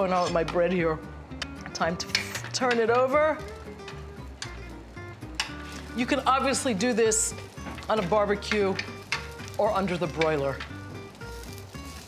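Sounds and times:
background music with low bass: 0.0s - 12.0s
metal tongs clicking: 1.4s - 4.6s, 5.3s - 5.9s, 7.8s - 10.8s
bread sizzling in grill pan: 3.2s - 12.0s.

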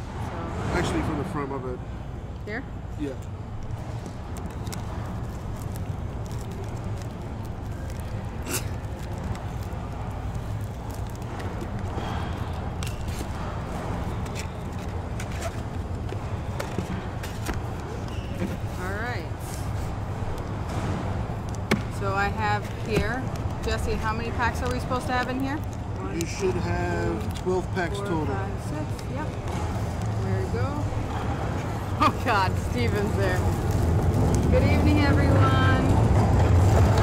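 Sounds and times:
plastic shrink-wrap crinkling and tearing: 3.6s - 20.6s, 31.8s - 35.9s.

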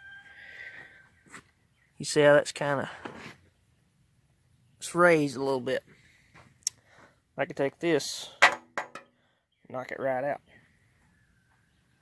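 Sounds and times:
distant rooster crowing: 0.0s - 1.2s.

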